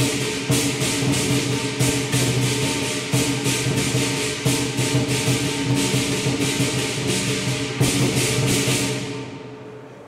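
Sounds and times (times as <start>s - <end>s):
big drum beating: 0.0s - 9.4s
cymbals clashing: 0.0s - 10.0s.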